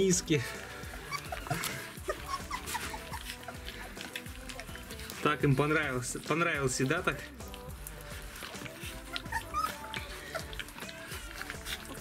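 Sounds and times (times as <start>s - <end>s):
background music: 0.0s - 12.0s
puppies lapping from bowls: 0.0s - 12.0s
puppies whimpering: 0.0s - 12.0s.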